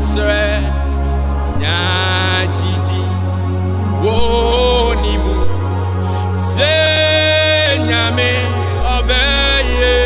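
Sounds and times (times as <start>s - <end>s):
instrumental backing with bass: 0.0s - 10.0s
man singing gospel: 0.0s - 10.0s.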